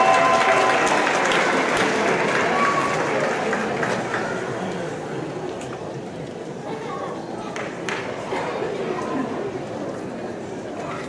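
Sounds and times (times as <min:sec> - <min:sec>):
voices cheering: 0:00.0 - 0:03.6
audience applauding: 0:00.0 - 0:04.8.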